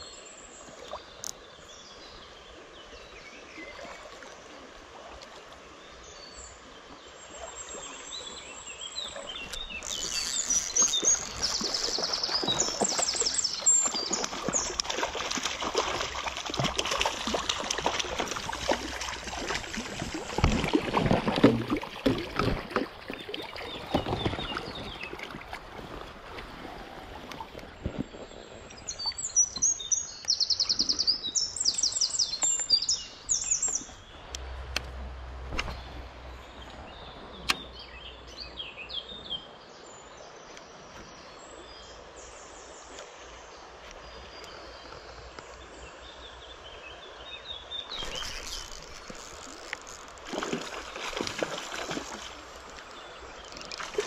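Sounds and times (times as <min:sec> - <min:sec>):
creek running water: 0:00.0 - 0:54.0
shallow stream rushing: 0:00.0 - 0:54.0
songbird singing: 0:05.6 - 0:25.5, 0:27.4 - 0:54.0
birds chirping: 0:07.3 - 0:20.8, 0:27.5 - 0:34.9, 0:35.6 - 0:54.0.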